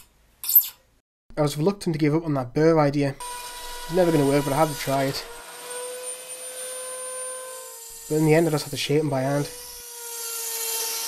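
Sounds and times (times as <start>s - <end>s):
router high-pitched whine: 3.2s - 11.0s.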